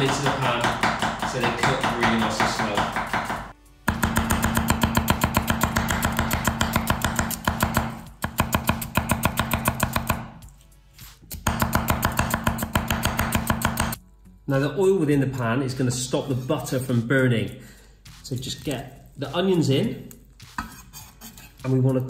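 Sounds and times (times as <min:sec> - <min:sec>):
knife slicing on wooden board: 0:20.4 - 0:21.8.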